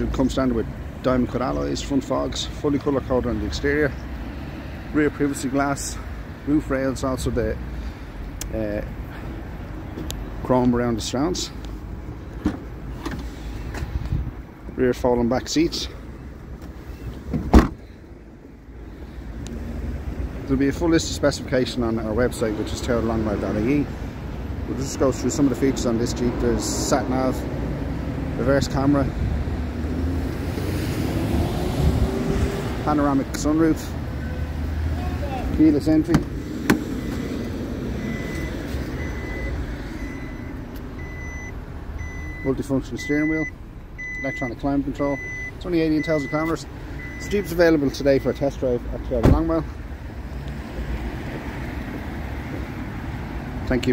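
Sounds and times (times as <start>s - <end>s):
car warning chime beeping: 36.9s - 48.8s.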